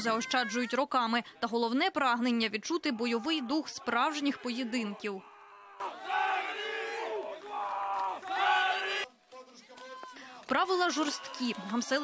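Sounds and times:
crowd shouting together: 2.8s - 9.1s.

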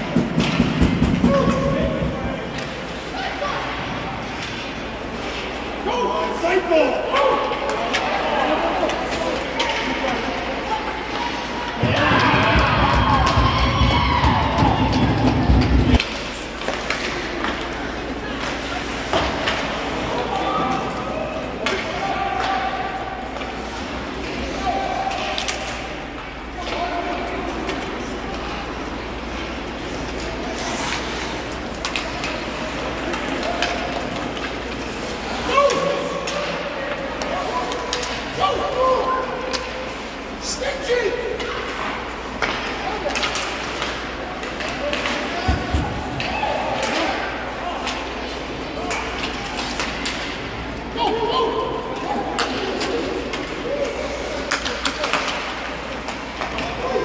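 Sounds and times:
hockey sticks and puck knocking: 0.0s - 2.8s, 8.8s - 19.9s, 41.4s - 51.0s, 52.0s - 53.7s, 54.3s - 57.0s
spectators calling out and chatting: 0.0s - 57.0s.

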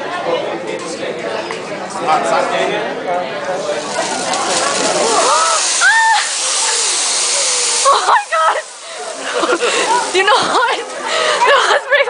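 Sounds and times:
griddle sizzling hiss: 3.5s - 11.9s.

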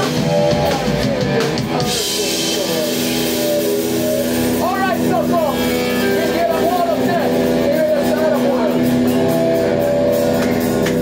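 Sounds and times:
person calling out: 3.5s - 8.9s.

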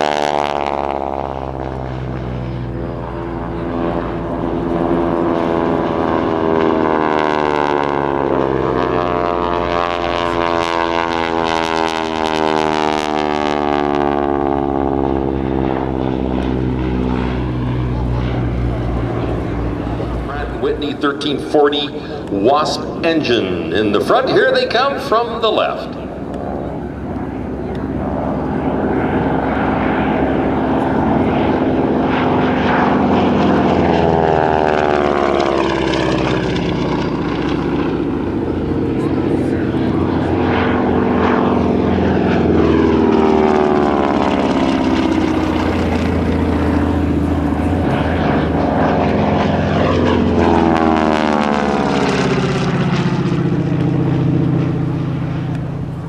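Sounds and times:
propeller aircraft droning overhead: 0.0s - 56.0s.

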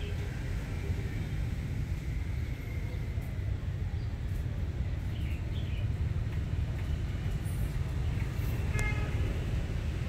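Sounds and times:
street background rumble: 0.0s - 10.0s
vehicle horn toot: 8.7s - 9.3s.

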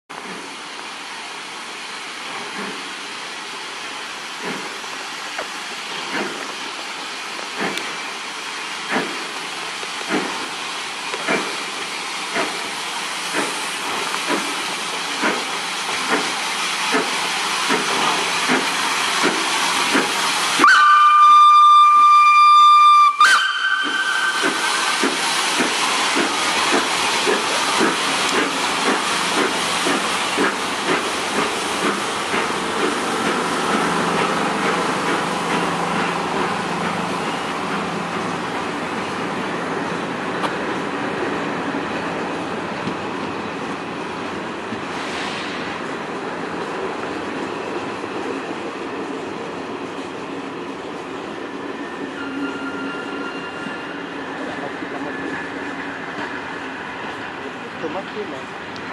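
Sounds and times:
steam hiss: 0.2s - 42.5s, 43.2s - 49.1s
steam locomotive exhaust chuffs: 5.7s - 40.8s
steam whistle blast: 20.6s - 25.2s.

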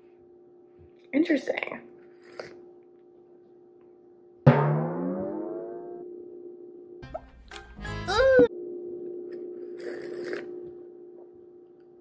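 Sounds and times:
steady hum: 0.0s - 12.0s
sip of espresso: 9.6s - 10.7s.

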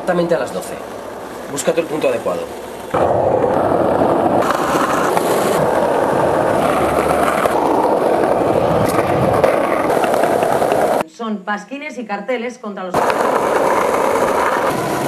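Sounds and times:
skateboard wheels on rough pavement: 0.1s - 11.0s, 12.9s - 15.0s.

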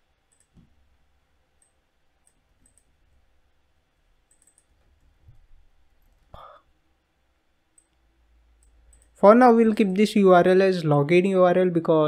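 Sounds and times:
keyboard and mouse clicks: 0.2s - 0.8s, 1.6s - 3.0s, 4.2s - 6.4s, 7.7s - 8.0s, 8.6s - 9.2s.

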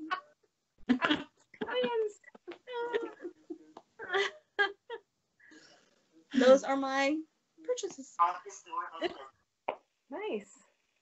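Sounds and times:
women laughing: 0.9s - 5.0s.

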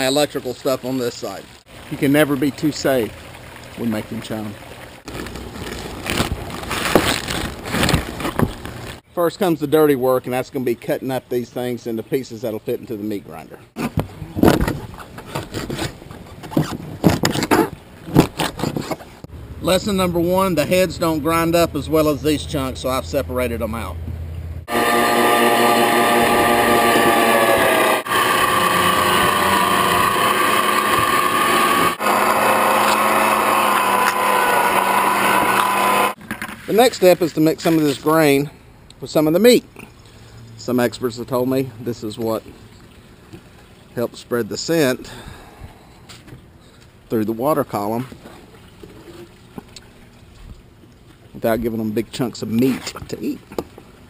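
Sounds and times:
electric meat grinder whining: 24.7s - 36.2s.

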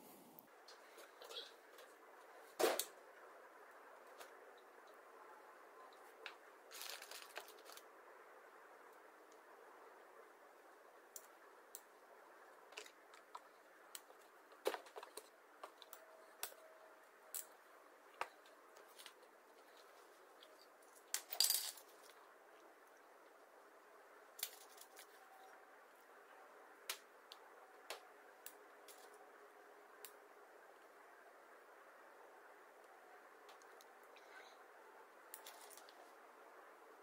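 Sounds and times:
faint steady hiss: 0.0s - 37.0s
metal parts clinking on workbench: 21.1s - 21.9s.

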